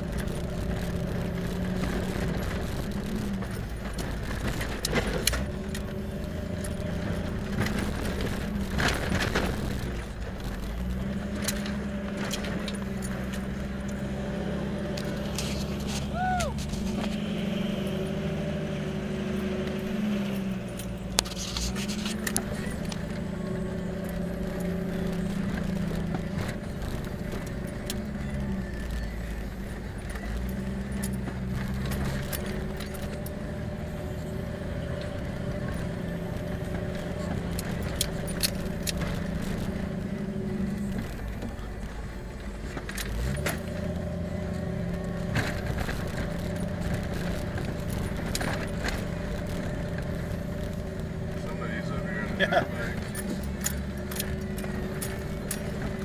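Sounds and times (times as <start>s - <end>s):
cab clicks and rattles: 0.0s - 17.3s, 19.5s - 56.0s
vehicle engine revving: 0.0s - 56.0s.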